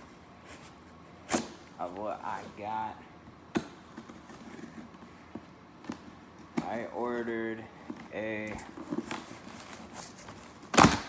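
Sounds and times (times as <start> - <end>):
knife cutting packing tape: 10.7 - 11.0.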